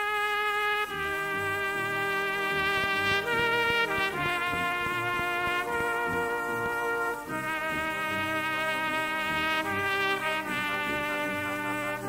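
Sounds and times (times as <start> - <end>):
brass band accompaniment: 0.0 - 12.0
cornet holding long notes: 0.0 - 12.0.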